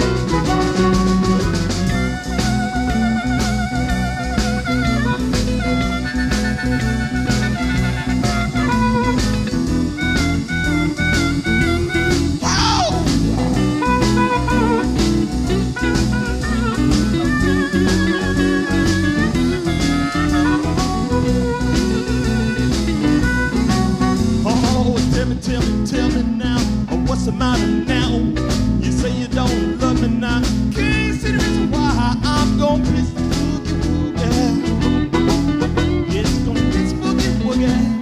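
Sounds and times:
shuffle beat: 0.0s - 25.4s
lead instrument bent notes: 0.0s - 26.4s, 30.8s - 38.0s
low accompaniment: 0.0s - 38.0s.

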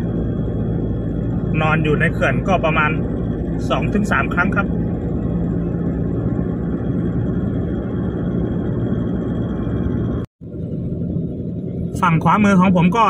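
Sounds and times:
car road and engine rumble: 0.0s - 13.0s.

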